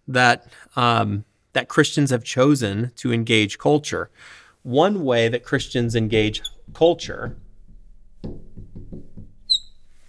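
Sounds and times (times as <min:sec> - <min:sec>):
felt tip squeak on glass: 0:06.3 - 0:06.8, 0:09.4 - 0:10.0
marker pen scratching on glass: 0:08.9 - 0:10.0.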